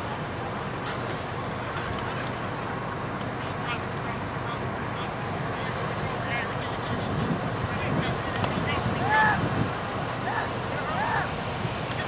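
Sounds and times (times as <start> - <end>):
wind rumble on microphone: 6.8 - 9.9.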